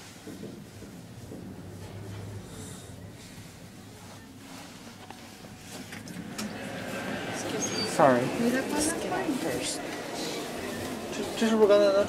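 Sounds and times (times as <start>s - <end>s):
elevator hum: 0.0s - 12.0s.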